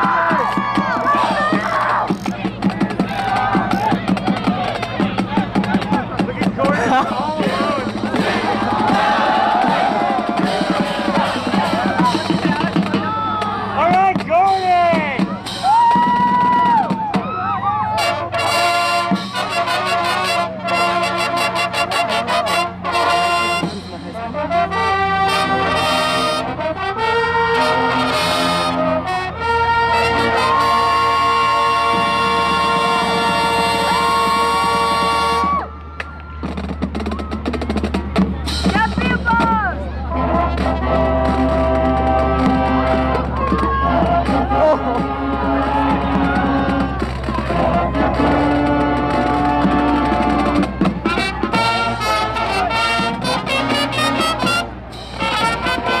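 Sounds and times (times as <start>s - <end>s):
voices cheering and shouting: 0.0s - 18.8s, 29.6s - 56.0s
marching band playing: 0.0s - 56.0s.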